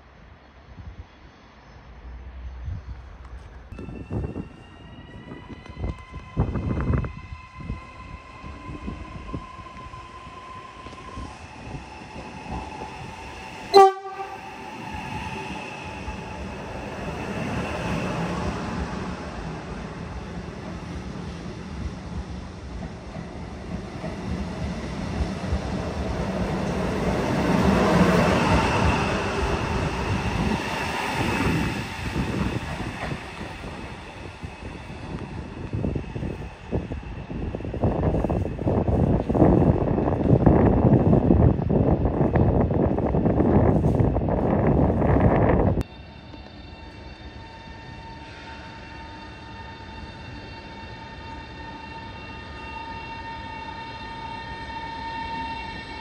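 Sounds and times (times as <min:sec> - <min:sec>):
electric train whine: 0:00.0 - 0:56.0
train rumbling past: 0:00.0 - 0:56.0
short loud train horn: 0:13.7 - 0:14.4.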